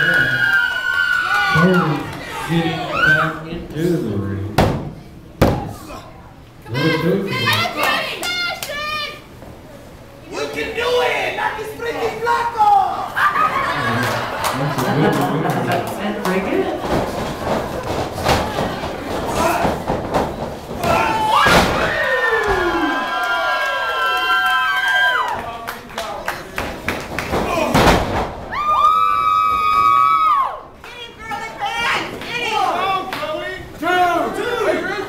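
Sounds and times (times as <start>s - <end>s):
loud impact thud: 4.6s - 5.8s, 19.6s - 22.0s, 27.4s - 28.5s
wrestling strikes smacking: 4.6s - 5.8s, 16.8s - 22.8s, 26.6s - 28.5s
voices: 5.5s - 24.2s
spectator yelling: 10.3s - 13.6s, 20.8s - 25.4s.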